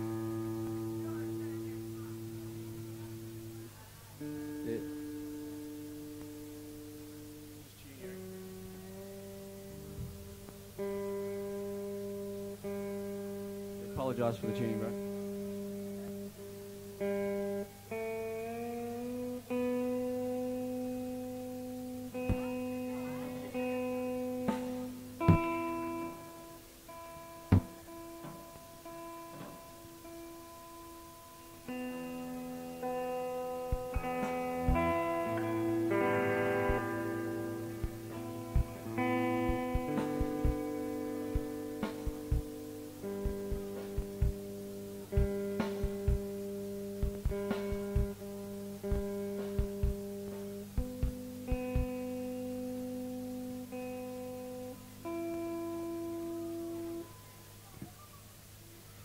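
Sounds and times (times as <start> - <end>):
guitar strings plucked ringing: 22.1 - 26.4, 31.7 - 52.4
clicks from strings and hands: 33.7 - 37.0, 37.8 - 40.7, 41.3 - 42.5, 43.1 - 44.4, 45.1 - 46.3, 47.0 - 48.2, 48.9 - 50.0, 50.8 - 52.0.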